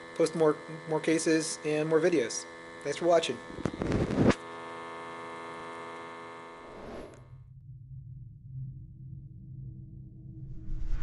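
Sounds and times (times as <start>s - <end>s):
electrical buzzing hum: 0.0s - 7.5s
faint low drone: 6.7s - 11.0s.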